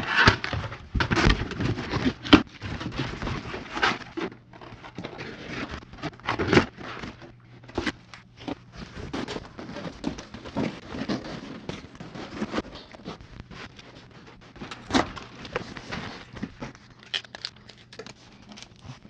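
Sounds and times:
cardboard boxes rustling and scraping: 0.0s - 17.2s.

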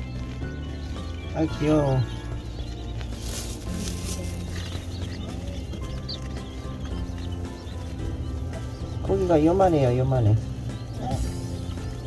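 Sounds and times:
background music: 0.0s - 12.0s
chicks peeping: 0.0s - 12.0s.

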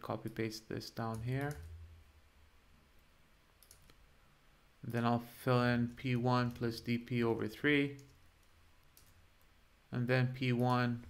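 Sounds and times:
keyboard clicks: 3.6s - 4.0s, 7.9s - 9.2s.

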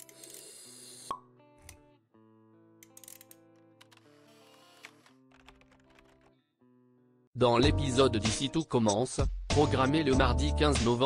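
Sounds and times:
soft background music: 7.4s - 11.0s.

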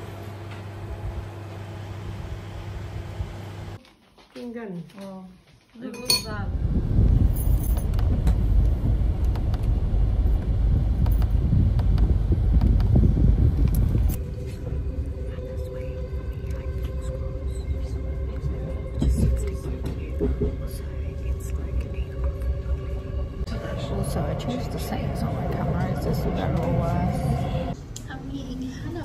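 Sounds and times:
train carriage hum: 6.3s - 29.0s
low rumble inside car: 6.5s - 27.8s.

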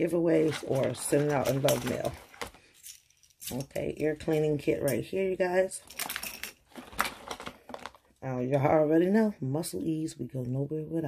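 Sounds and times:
small objects clicking and clinking: 0.5s - 5.2s, 5.8s - 8.0s.

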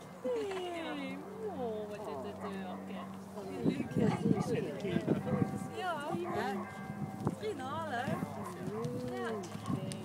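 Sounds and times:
bystanders talking: 0.0s - 10.0s
distant aircraft drone: 0.0s - 10.0s.

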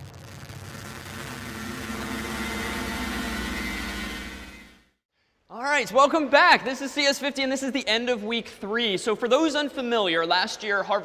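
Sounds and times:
static: 0.0s - 4.9s
steady low hum: 0.1s - 5.0s.

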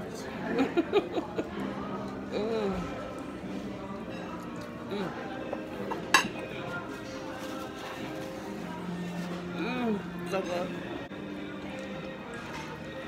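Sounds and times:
murmured talk: 0.0s - 11.5s
background music: 0.0s - 13.0s
tableware clink: 5.5s - 6.5s.

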